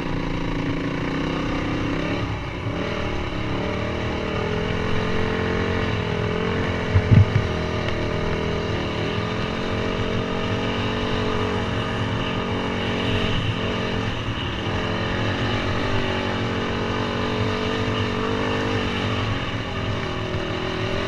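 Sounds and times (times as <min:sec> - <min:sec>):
dirt bike engine running: 0:00.1 - 0:19.2.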